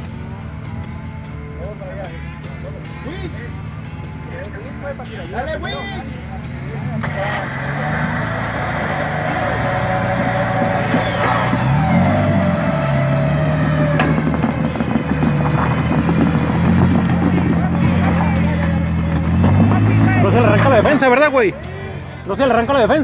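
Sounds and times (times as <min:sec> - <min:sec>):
engine running at low revs: 0:00.0 - 0:23.0.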